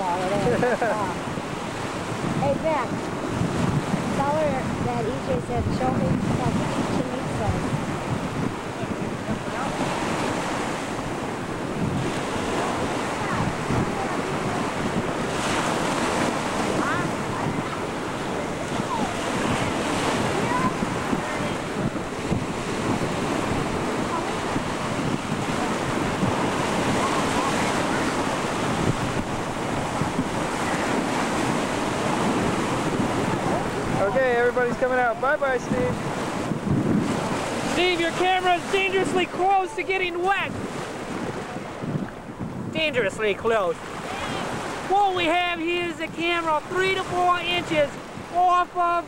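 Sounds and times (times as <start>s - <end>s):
waves lapping in surf: 0.0s - 49.0s
wind buffeting microphone: 0.0s - 49.0s.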